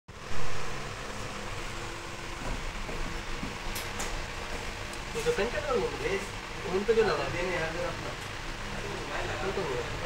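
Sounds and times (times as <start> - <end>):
background hum and hiss: 0.1 - 10.0.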